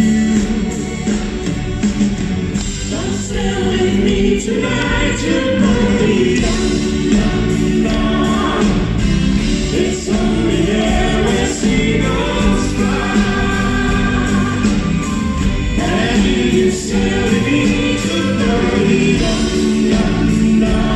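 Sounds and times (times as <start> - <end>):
pop band playing: 0.0 - 20.9
voices singing in harmony: 2.5 - 20.9.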